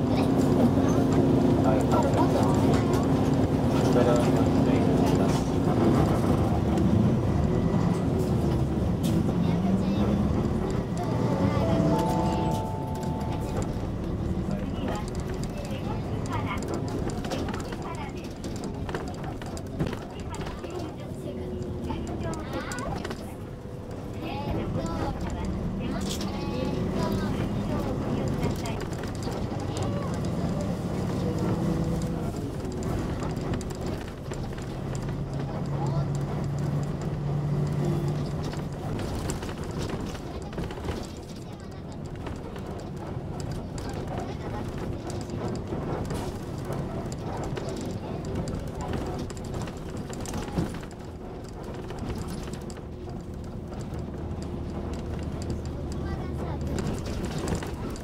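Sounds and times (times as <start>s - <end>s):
bus engine hum: 0.0s - 58.0s
road noise: 0.0s - 58.0s.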